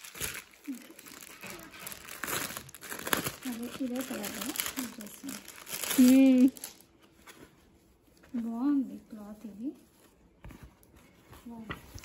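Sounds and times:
plastic packaging crinkling: 0.0s - 7.2s.

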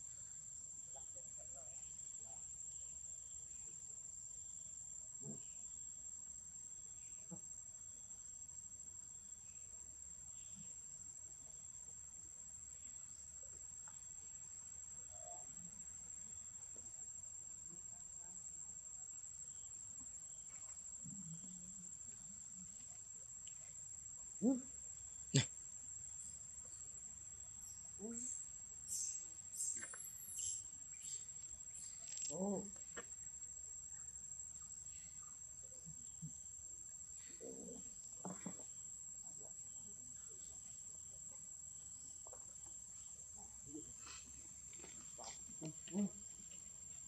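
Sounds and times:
insects droning: 0.0s - 47.0s.

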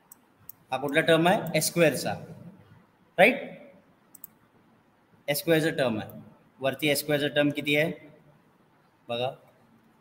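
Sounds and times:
computer mouse clicks: 4.1s - 4.4s.

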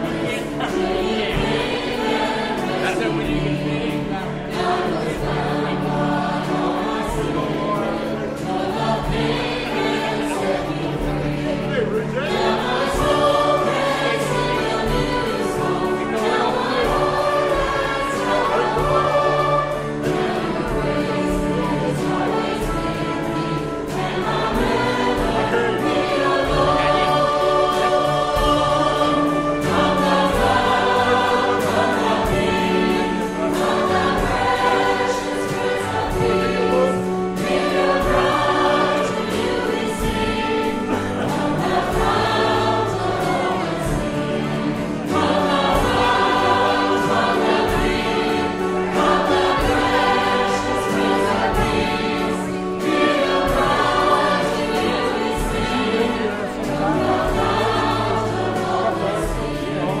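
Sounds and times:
choir singing a gospel hymn: 0.0s - 60.0s
instrumental accompaniment: 0.0s - 60.0s.

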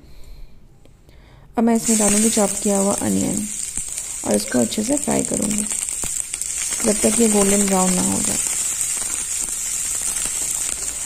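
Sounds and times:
onions sizzling in a pan: 1.8s - 11.0s.

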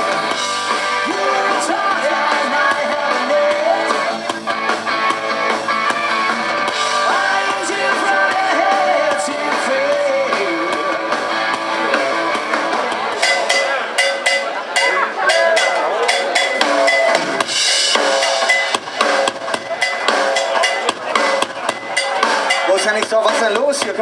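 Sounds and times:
person singing: 0.0s - 4.4s, 6.8s - 12.9s
rock band playing: 0.0s - 24.0s
drum kit hits and cymbal crashes: 2.4s - 24.0s.

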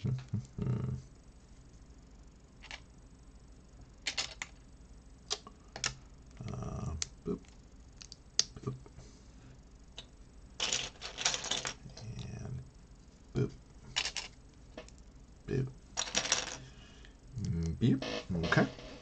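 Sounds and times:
plastic bricks clicking and clattering: 4.1s - 4.5s, 10.6s - 12.2s, 14.0s - 14.4s, 16.0s - 16.6s.

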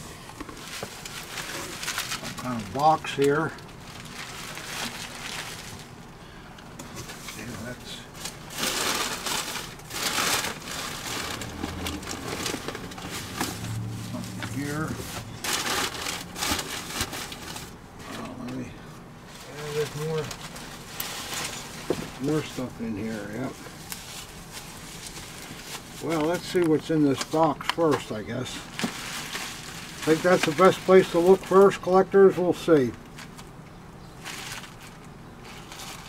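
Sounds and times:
bubble wrap and paper crinkling: 0.3s - 6.2s, 6.9s - 36.0s.

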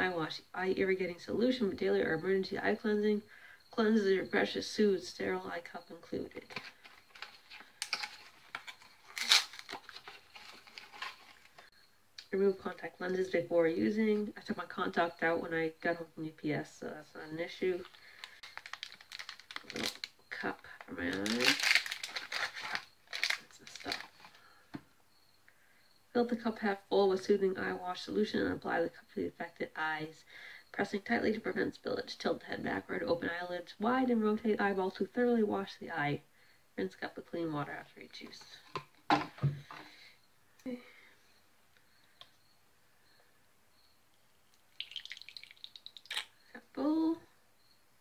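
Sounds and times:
cardboard box handling: 6.5s - 11.6s
liquid dripping into plastic cup: 44.1s - 46.4s.

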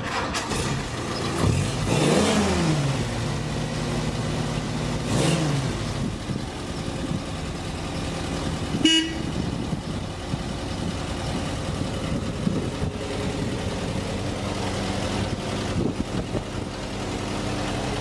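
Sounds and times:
engine idling and revving: 0.0s - 18.0s
short horn toot: 8.8s - 9.3s.

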